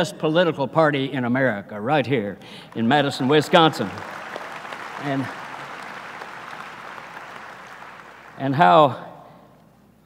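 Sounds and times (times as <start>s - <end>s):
audience applauding: 2.5s - 8.7s.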